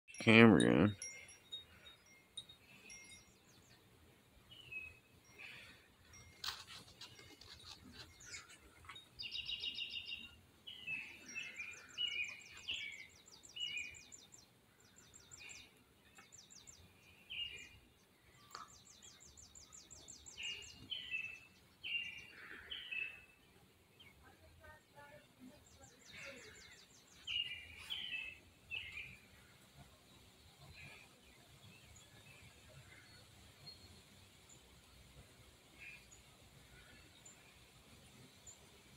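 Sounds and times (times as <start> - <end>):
faint bird chirps: 0.2 - 38.6.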